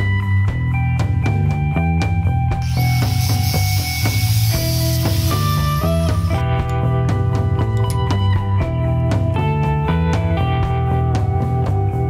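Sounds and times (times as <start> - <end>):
background music with steady beat: 0.0 - 12.0
angle grinder cutting steel: 2.6 - 6.4.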